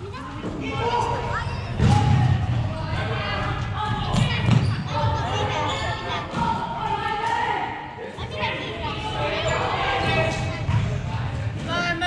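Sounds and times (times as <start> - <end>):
thuds and knocks of ball game: 1.7 - 2.7, 3.3 - 4.8.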